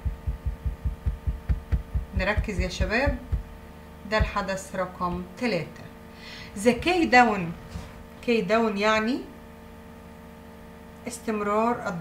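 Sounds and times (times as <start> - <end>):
low dull thumps: 0.0 - 5.3, 6.6 - 7.5.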